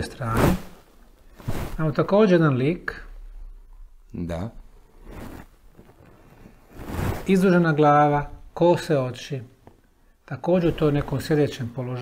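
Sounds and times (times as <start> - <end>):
stone rubbing against skin: 5.0 - 7.4.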